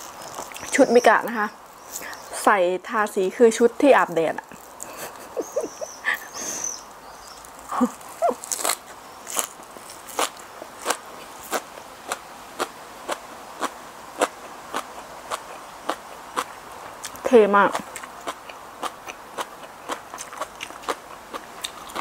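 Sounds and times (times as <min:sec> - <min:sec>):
chewing crisp vegetables: 0:00.0 - 0:02.4, 0:03.0 - 0:22.0.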